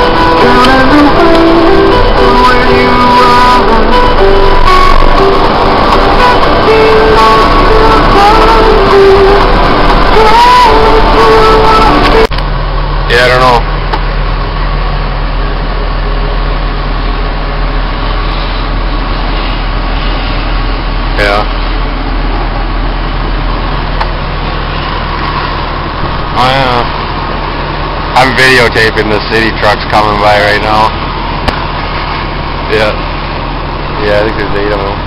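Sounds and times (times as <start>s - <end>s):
loader engine droning: 0.0s - 35.0s.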